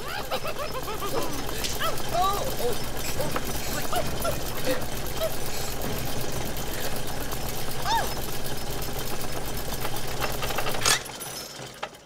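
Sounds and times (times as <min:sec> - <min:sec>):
vibrating machine buzzing and rattling: 0:00.0 - 0:12.0.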